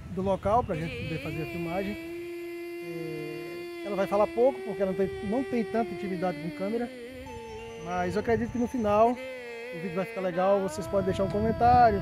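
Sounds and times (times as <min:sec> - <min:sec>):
speech: 0:00.2 - 0:02.0, 0:02.9 - 0:06.9, 0:09.8 - 0:12.0
man humming: 0:00.5 - 0:12.0
pitched drone: 0:00.6 - 0:12.0.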